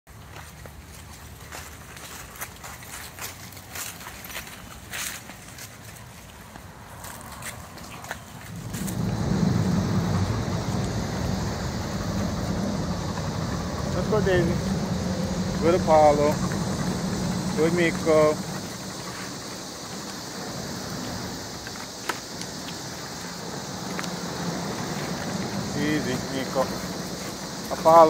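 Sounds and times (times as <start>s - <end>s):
footsteps in grass and leaves: 0.1s - 11.3s
loud low-pitched noise: 8.4s - 28.0s.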